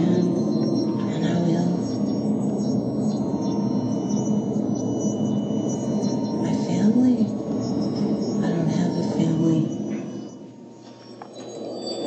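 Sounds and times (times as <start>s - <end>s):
droning gong-like ambient music: 0.0s - 12.0s.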